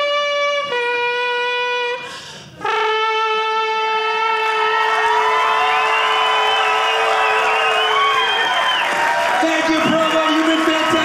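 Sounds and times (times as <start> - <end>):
man holding a long note: 0.0 - 6.2
quick breath: 2.0 - 2.6
audience cheering and whooping: 4.4 - 11.0
applause: 4.7 - 11.0.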